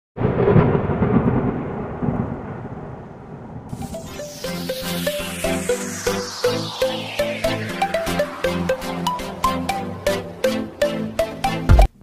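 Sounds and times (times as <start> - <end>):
thunderclap rumbling: 0.2 - 6.0
electronic music: 3.7 - 12.0.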